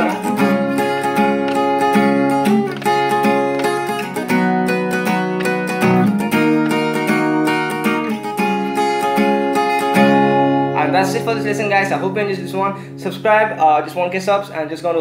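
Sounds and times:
acoustic guitar strummed hard: 0.0s - 13.9s.

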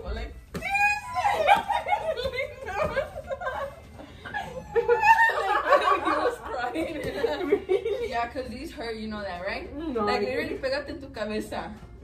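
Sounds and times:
woman laughing hard: 1.1s - 8.1s.

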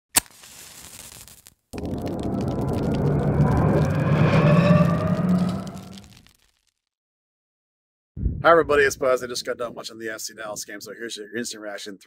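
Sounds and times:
faint rising tones: 1.8s - 6.2s
low rumble: 1.8s - 6.2s.

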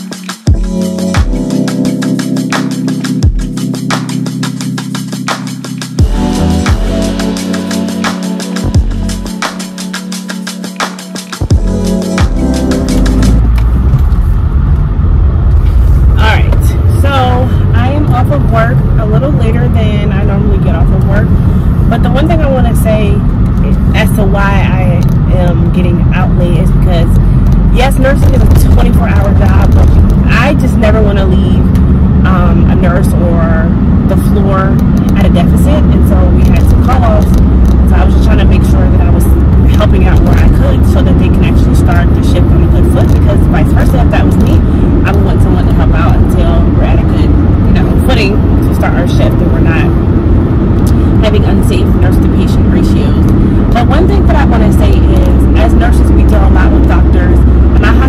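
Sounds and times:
road and engine rumble: 0.0s - 58.0s
woman talking: 16.2s - 50.0s, 50.9s - 58.0s.

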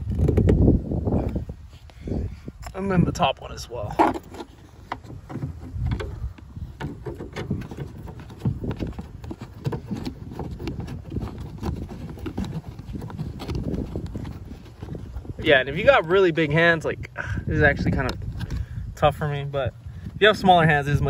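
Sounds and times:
hand rubbing plastic trim: 3.8s - 16.0s.

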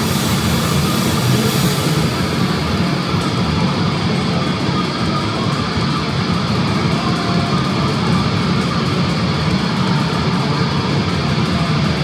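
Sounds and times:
loud electric guitar: 0.0s - 12.0s.

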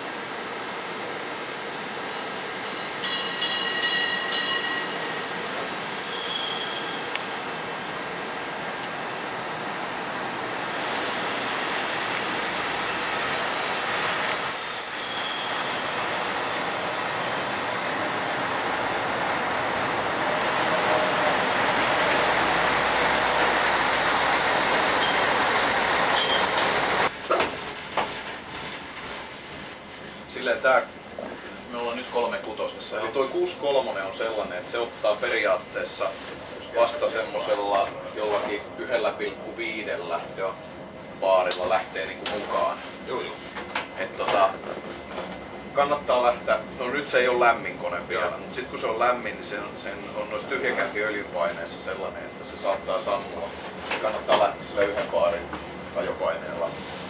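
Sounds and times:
train wheels and brakes squealing: 2.0s - 8.7s, 12.6s - 18.2s, 22.8s - 27.1s
sharp metal clanks: 2.1s - 5.0s.

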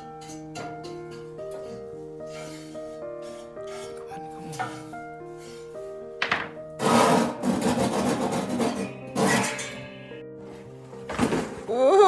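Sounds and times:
background music: 0.0s - 12.0s
metal ash pan scraping: 1.6s - 5.8s, 6.8s - 10.2s.

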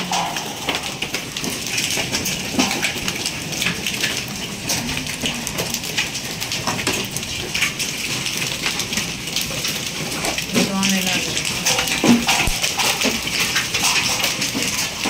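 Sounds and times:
hail and rain on hard surfaces: 0.0s - 15.0s.

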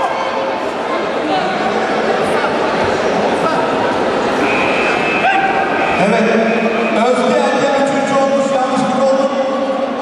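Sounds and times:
spectators shouting and cheering: 0.0s - 10.0s
loud drawn-out shouts: 3.4s - 7.6s.

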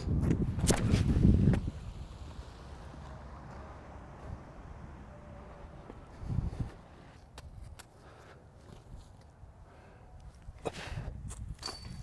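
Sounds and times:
rumbling wind-like noise: 0.0s - 3.0s, 5.6s - 7.1s
outdoor background: 0.0s - 12.0s.

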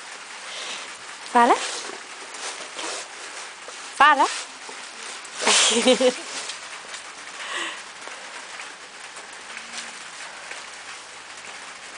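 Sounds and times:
paper rustling and crinkling: 1.4s - 7.1s.

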